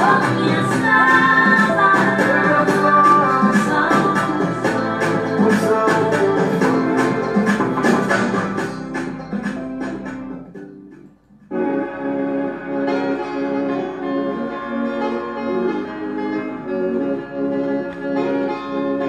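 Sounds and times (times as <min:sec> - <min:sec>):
music with percussive beat: 0:00.0 - 0:11.5.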